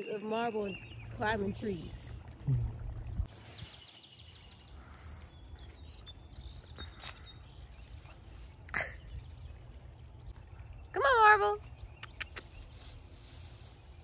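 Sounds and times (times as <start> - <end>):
low rumble of creek: 0.0 - 14.0.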